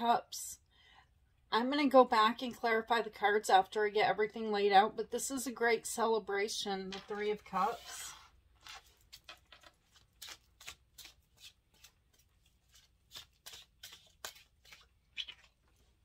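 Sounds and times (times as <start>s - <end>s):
cards ticking and sliding: 7.0s - 16.0s.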